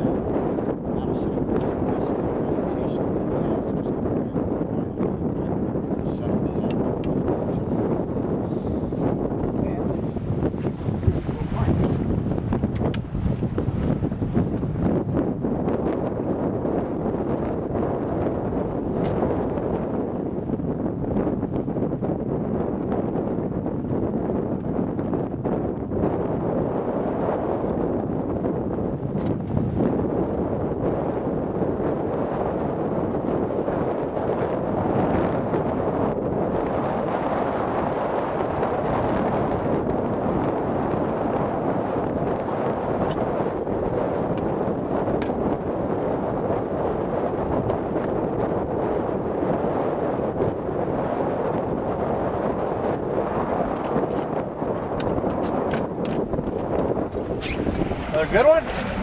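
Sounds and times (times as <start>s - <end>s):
wind blowing across microphone: 0.0s - 59.0s.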